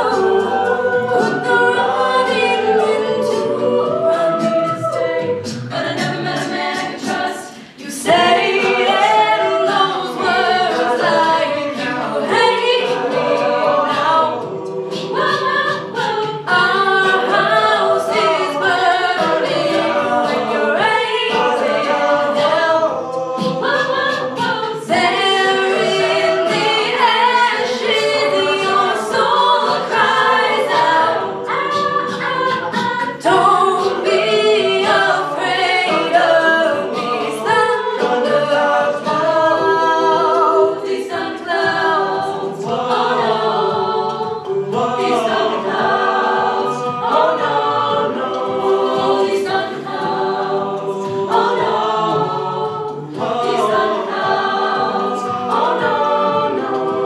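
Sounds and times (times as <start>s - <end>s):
a cappella group singing: 0.0s - 57.0s
vocal percussion beat: 0.0s - 57.0s.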